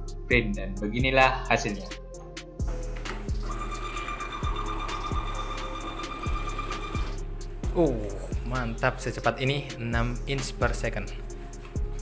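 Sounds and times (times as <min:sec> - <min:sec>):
background music with beat: 0:00.0 - 0:12.0
label printer motor whine: 0:03.4 - 0:07.2.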